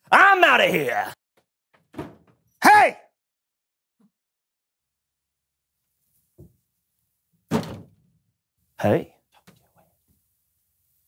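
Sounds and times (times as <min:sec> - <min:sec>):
wooden door thudding shut: 0:01.8 - 0:02.4, 0:07.5 - 0:08.0.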